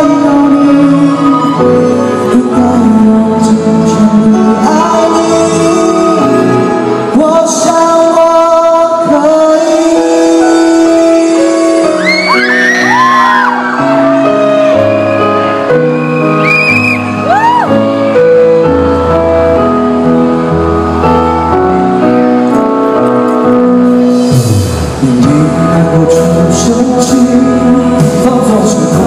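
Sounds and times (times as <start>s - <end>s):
live band playing ballad: 0.0s - 29.0s
bass line: 11.4s - 29.0s
audience screams and whoops: 11.9s - 18.6s.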